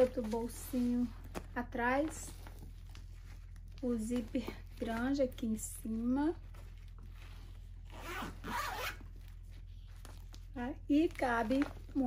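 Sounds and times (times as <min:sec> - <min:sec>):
zipper being pulled: 0:07.8 - 0:09.2.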